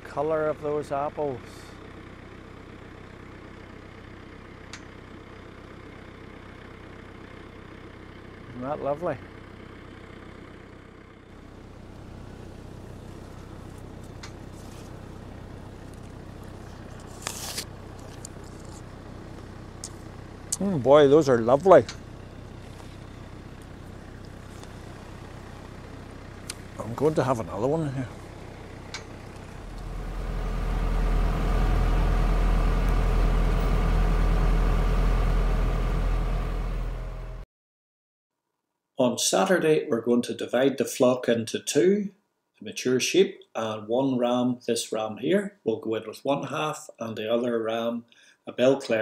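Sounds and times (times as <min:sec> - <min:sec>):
tractor engine drone: 0:00.0 - 0:37.4.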